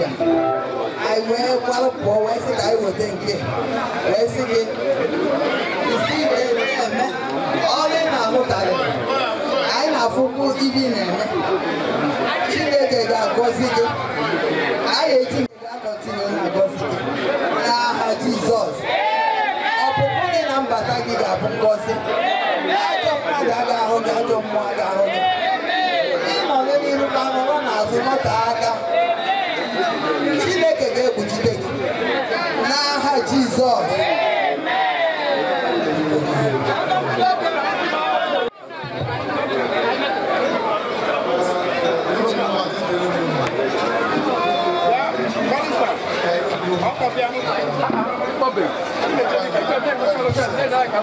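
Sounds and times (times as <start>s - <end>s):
people chattering: 0.0s - 51.0s
woman talking into a microphone: 1.0s - 4.8s, 12.5s - 14.1s, 17.6s - 18.8s, 19.8s - 22.1s, 26.3s - 28.9s, 30.4s - 31.8s
woman talking into microphone: 19.8s - 22.1s.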